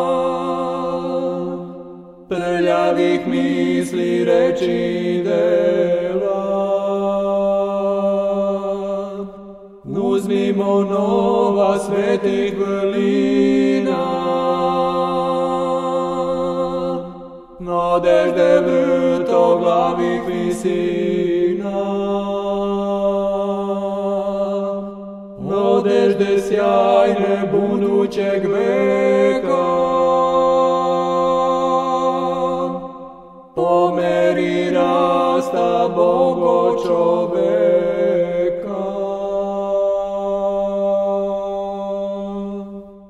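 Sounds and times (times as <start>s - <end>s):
chant melody over drone: 0.0s - 43.0s
choir chanting drone: 0.0s - 43.0s
voices chanting: 9.9s - 22.3s, 33.6s - 39.8s.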